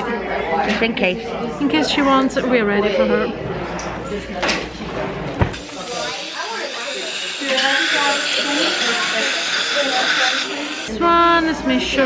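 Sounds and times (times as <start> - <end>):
dental air hiss: 5.6 - 10.9.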